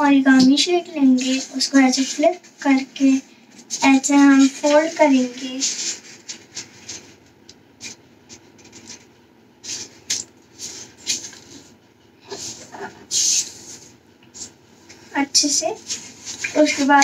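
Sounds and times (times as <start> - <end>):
paper rustling as folded: 0.6 - 17.0.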